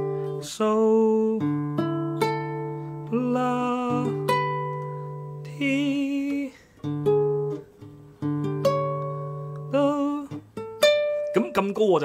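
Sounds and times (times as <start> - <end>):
classical guitar playing: 0.0 - 12.0.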